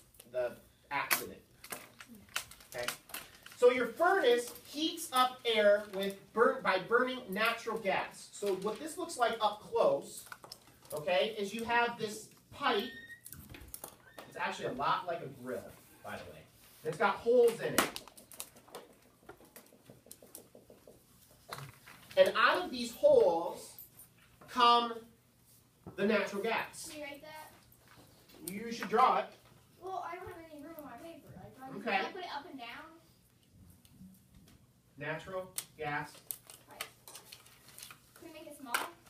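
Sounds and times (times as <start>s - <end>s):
marker tapping and scratching: 16.9s - 21.7s
marker on whiteboard: 19.2s - 21.6s.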